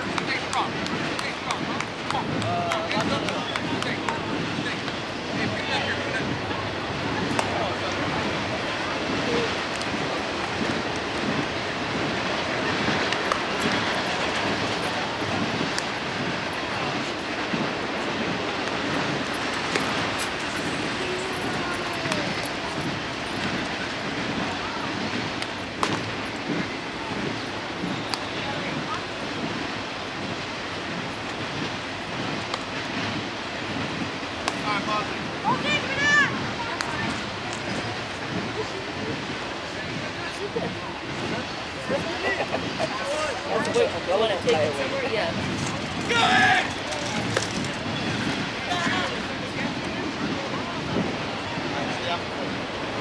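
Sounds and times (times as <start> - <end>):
faint distant voices: 0.0 - 53.0
wind buffeting microphone: 0.0 - 53.0.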